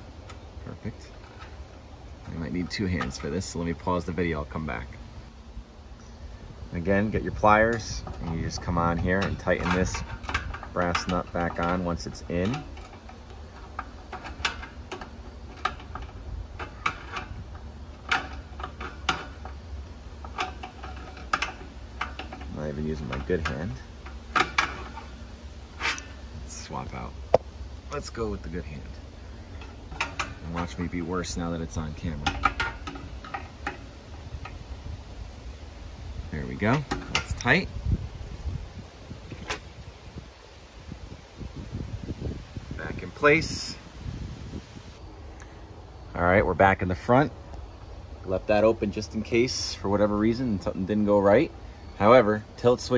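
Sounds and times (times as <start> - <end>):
wind rumble on microphone: 30.0 - 45.0.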